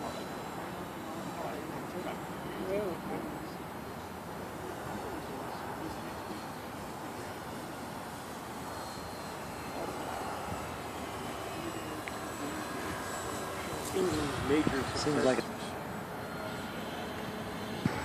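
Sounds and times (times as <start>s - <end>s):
model plane propeller drone: 0.0s - 18.0s.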